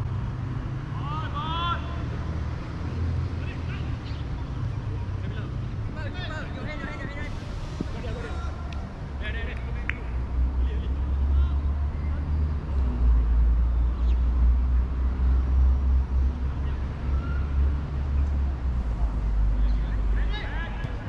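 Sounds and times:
wind buffeting microphone: 0:05.1 - 0:08.3.

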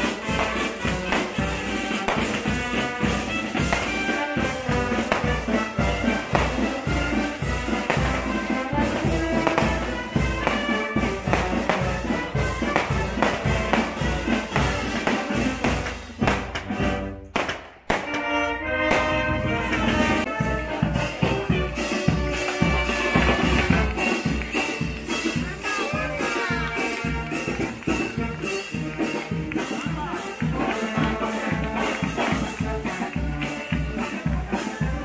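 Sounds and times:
brass band music: 0:00.0 - 0:35.0
steady drum beat: 0:00.0 - 0:35.0.

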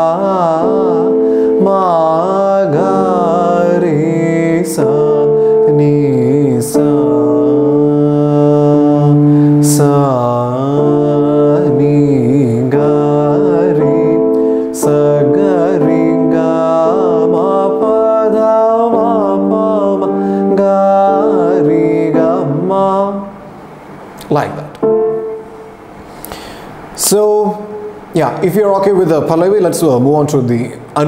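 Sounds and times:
man singing: 0:00.0 - 0:23.5.

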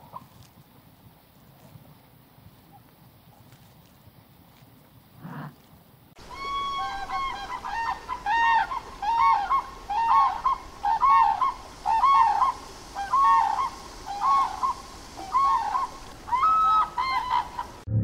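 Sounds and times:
cranes honking: 0:06.2 - 0:17.8.

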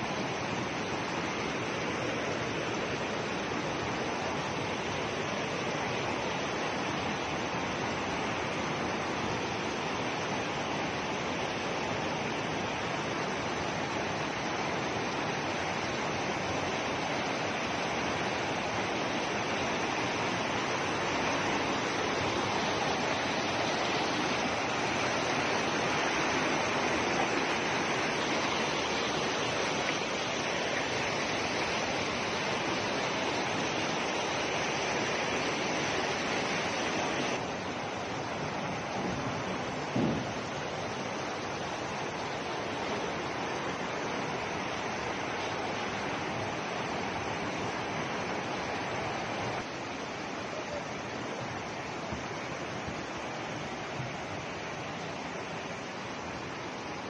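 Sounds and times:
floodwater rushing: 0:00.0 - 0:57.0.

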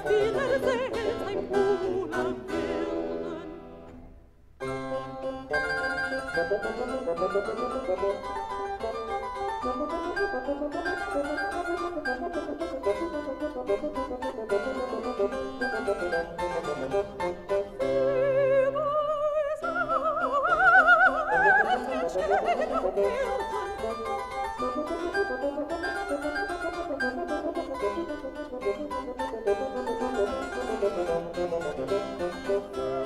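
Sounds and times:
chamber orchestra playing: 0:05.2 - 0:18.5, 0:21.4 - 0:33.0.

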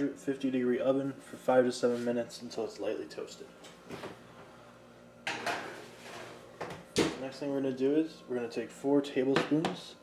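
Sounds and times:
baking sheet sliding onto rack: 0:05.4 - 0:06.4.

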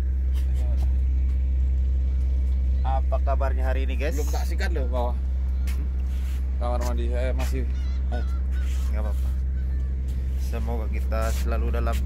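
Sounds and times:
ship engine rumbling: 0:00.0 - 0:12.0.

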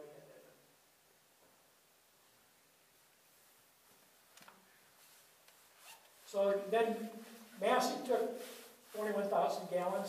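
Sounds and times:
faint rustle: 0:01.4 - 0:10.0.

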